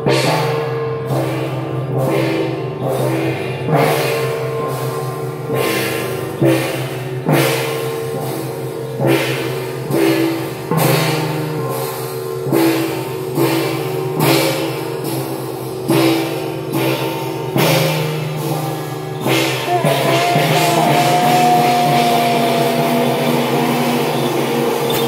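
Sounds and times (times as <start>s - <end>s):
gongs struck: 0.0s - 25.0s
large hand cymbals crashing: 0.0s - 25.0s.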